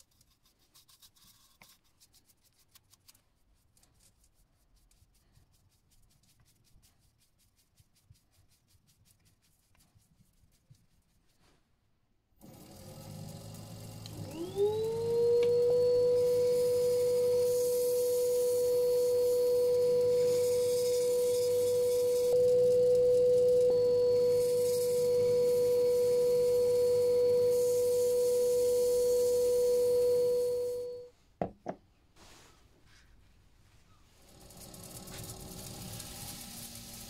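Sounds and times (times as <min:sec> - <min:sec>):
electric motor whining: 0:12.5 - 0:31.0.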